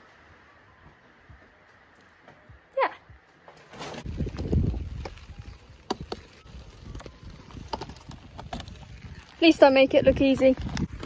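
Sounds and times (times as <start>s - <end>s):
plastic bag rustling: 3.6s - 11.0s.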